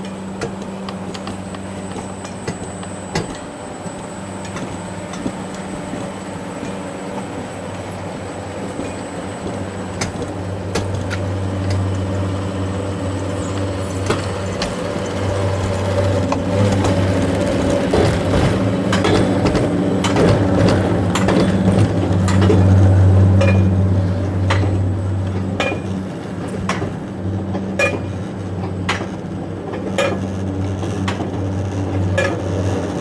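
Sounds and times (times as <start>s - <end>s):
sled and track clatter: 0.0s - 33.0s
steady mechanical hum: 0.0s - 33.0s.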